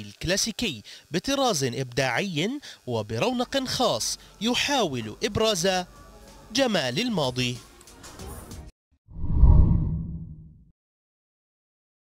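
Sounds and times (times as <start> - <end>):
deep whoosh: 9.1 - 10.5.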